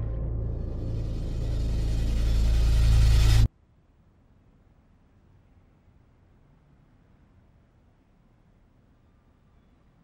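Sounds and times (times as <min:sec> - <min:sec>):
deep low hum: 0:00.0 - 0:03.5.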